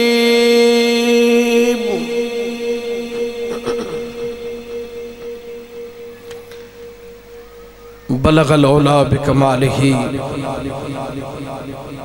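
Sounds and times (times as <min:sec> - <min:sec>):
ringing tone through loudspeakers: 0:01.0 - 0:12.0.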